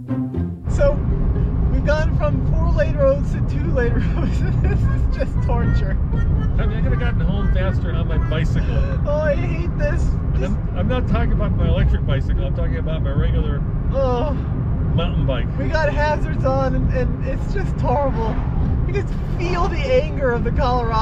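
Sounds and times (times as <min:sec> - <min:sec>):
road and wind noise in car: 0:00.6 - 0:21.0
people laughing and chattering: 0:03.9 - 0:10.6.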